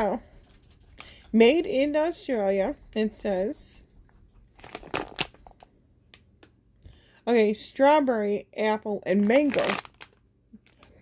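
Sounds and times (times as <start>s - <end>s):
packaging crackles: 9.2s - 10.9s.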